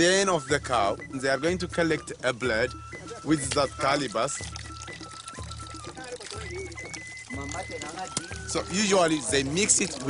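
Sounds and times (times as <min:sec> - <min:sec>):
background music with low pulse: 0:00.0 - 0:10.0
liquid pouring: 0:02.8 - 0:10.0.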